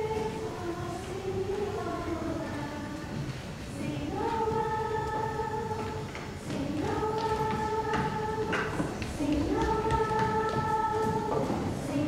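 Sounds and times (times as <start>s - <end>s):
group of young singers singing: 0.0s - 12.0s.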